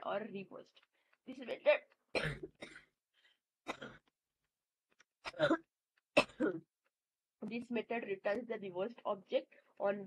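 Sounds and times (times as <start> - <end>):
person coughing: 2.1 - 3.0, 3.6 - 4.1, 5.2 - 6.7.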